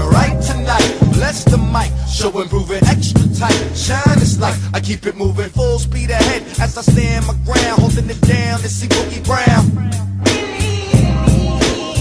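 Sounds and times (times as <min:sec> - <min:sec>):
rapping over a beat: 0:00.0 - 0:12.0.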